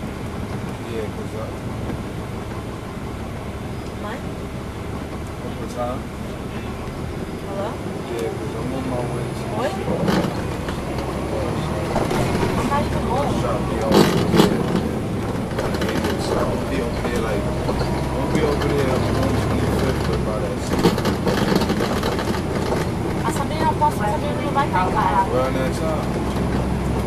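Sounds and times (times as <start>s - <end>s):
bus engine droning: 0.0s - 27.0s
passenger talking: 0.0s - 27.0s.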